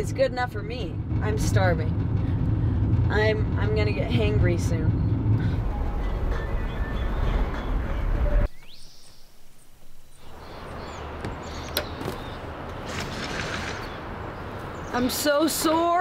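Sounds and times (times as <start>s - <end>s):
outdoor ambience: 0.0s - 16.0s
van road and engine noise: 0.0s - 16.0s
short rising whoosh: 0.8s - 8.5s
bird chirps: 5.8s - 12.5s.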